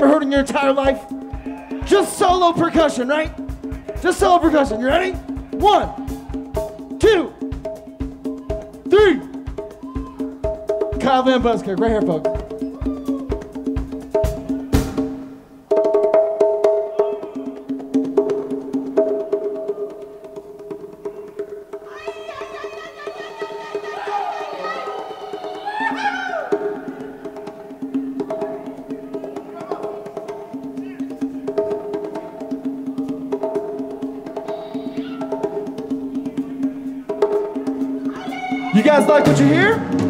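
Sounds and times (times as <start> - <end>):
live band playing softly: 0.0 - 40.0.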